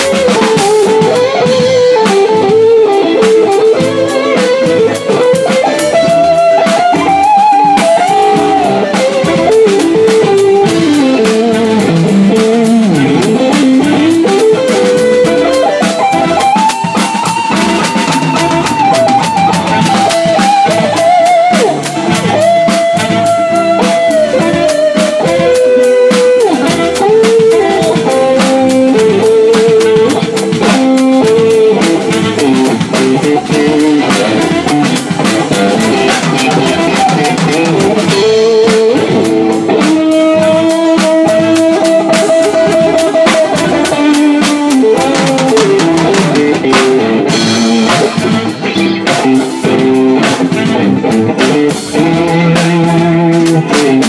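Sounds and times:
live rock band playing: 0.0 - 54.0
wavering lead melody: 0.0 - 54.0.

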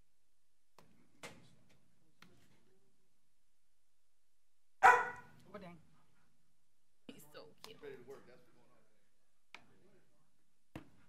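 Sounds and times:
dog barking: 4.8 - 5.3.

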